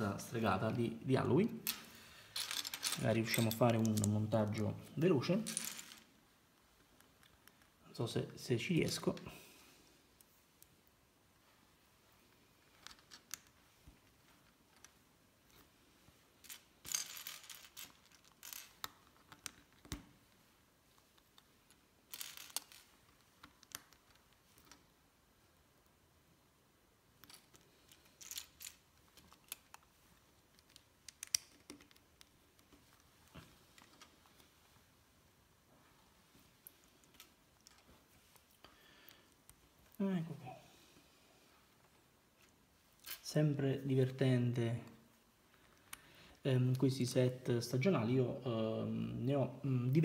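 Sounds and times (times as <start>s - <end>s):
plastic pieces clicking together: 21.7s - 24.8s, 27.2s - 33.0s.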